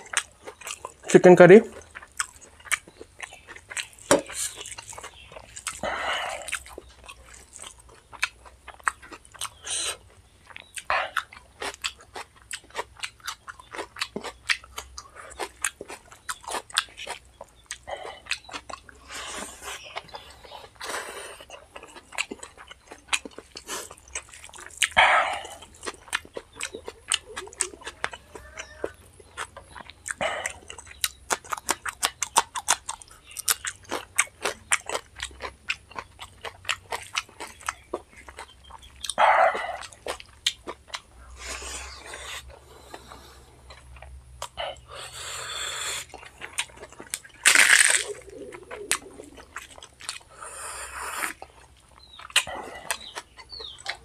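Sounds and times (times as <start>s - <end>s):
person chewing with wet smacks: 0.0s - 54.0s.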